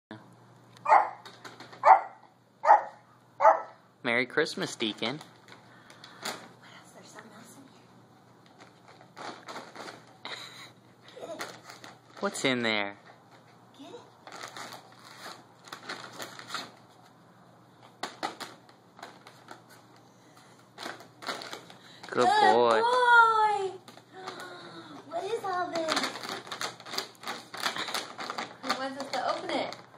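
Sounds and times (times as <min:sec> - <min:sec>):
small dog barking: 0:00.8 - 0:01.2, 0:01.8 - 0:03.8
plastic bags crinkling: 0:04.8 - 0:06.6, 0:08.4 - 0:13.4, 0:14.2 - 0:17.1, 0:18.0 - 0:19.8, 0:20.6 - 0:29.9.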